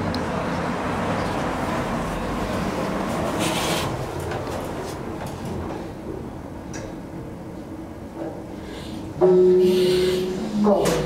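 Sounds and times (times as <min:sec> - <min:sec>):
station background noise: 0:00.0 - 0:11.0
sliding elevator doors closing: 0:02.5 - 0:05.9.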